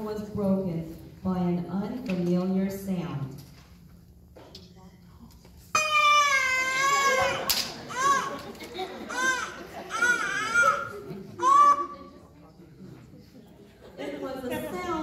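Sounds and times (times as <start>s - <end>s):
baby crying over speakers: 5.8s - 8.4s, 9.0s - 11.9s.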